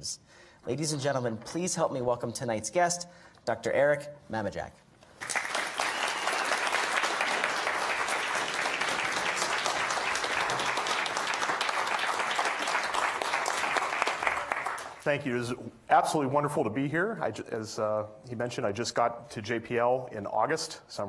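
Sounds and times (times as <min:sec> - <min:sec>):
audience applauding: 0:05.2 - 0:15.0.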